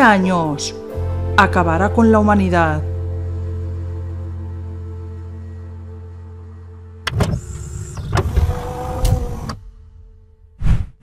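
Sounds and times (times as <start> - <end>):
swooshes: 9.8 - 11.0.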